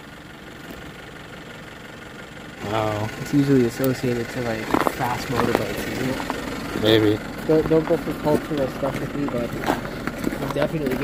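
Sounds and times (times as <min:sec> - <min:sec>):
car engine idling: 0:00.0 - 0:11.0.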